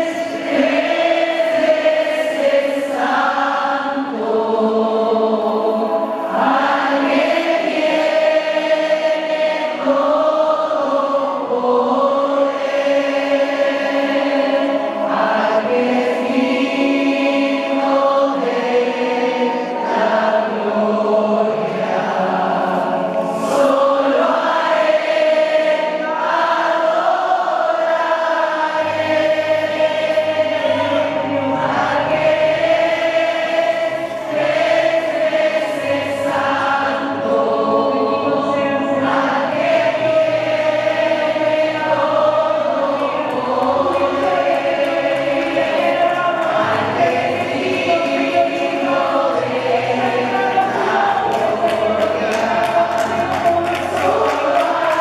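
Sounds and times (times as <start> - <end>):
choir singing a slow hymn: 0.0 - 55.0.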